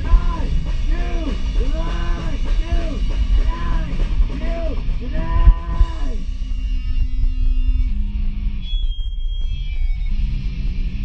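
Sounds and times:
person singing: 0:00.0 - 0:06.2
bass guitar: 0:00.0 - 0:11.0
distorted electric guitar: 0:00.0 - 0:11.0
drums: 0:00.0 - 0:11.0.

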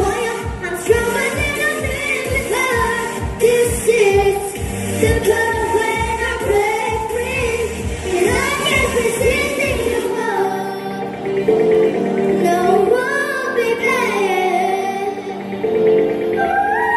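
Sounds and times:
girls singing pop song: 0:00.0 - 0:16.9.

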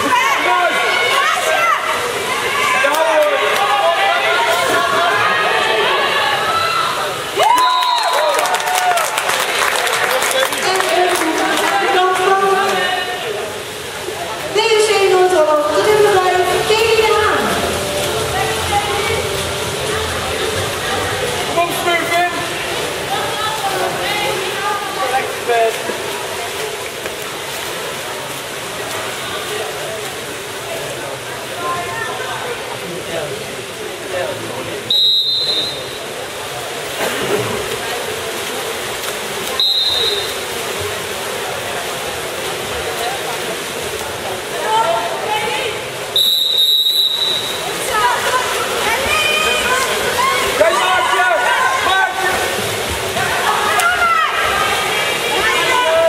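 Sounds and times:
swimmers splashing water: 0:00.0 - 0:56.0
voices in pool hall: 0:00.0 - 0:56.0
referee's whistle blasts: 0:34.9 - 0:36.0, 0:39.6 - 0:40.4, 0:46.2 - 0:47.6.

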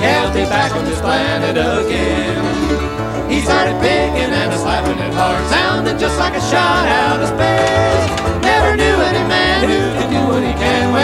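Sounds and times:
banjo picking: 0:00.0 - 0:11.0
guitar picking: 0:00.0 - 0:11.0
pulsing bass: 0:00.0 - 0:11.0
sliding bending lead notes: 0:00.0 - 0:11.0.

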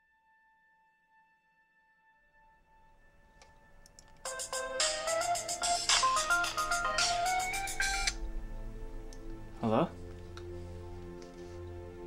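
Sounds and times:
mobile phone ringtone: 0:04.3 - 0:08.1.

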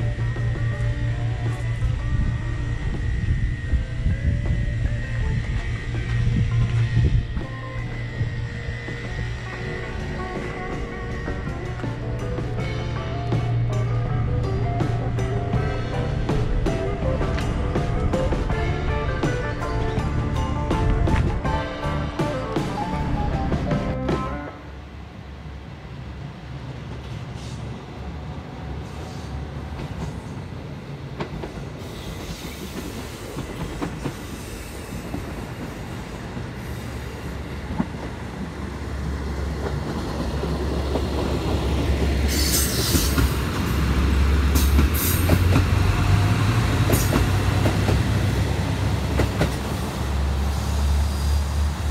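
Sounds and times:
train rumbling: 0:00.0 - 0:51.9
wheels clacking over rail joints: 0:37.6 - 0:50.5.

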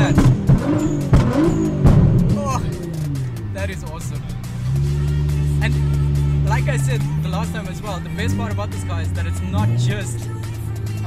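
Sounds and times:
exhaust cracks and pops: 0:00.0 - 0:04.1
car engine under throttle: 0:00.0 - 0:11.0.

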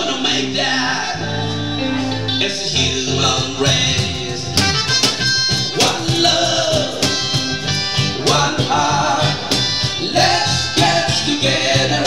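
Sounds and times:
strummed acoustic guitars: 0:01.2 - 0:12.0.

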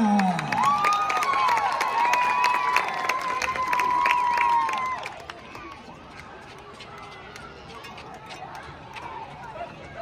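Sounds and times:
crowd cheering and clapping: 0:00.0 - 0:09.8.

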